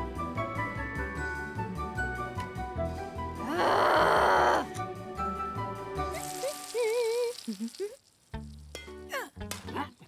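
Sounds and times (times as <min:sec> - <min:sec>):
cartoon hose spraying hiss: 0:06.1 - 0:08.1.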